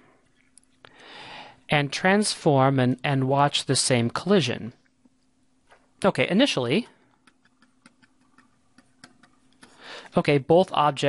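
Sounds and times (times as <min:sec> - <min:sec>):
faint steady hum: 0:00.0 - 0:11.0
stylus tapping on tablet: 0:07.2 - 0:09.8.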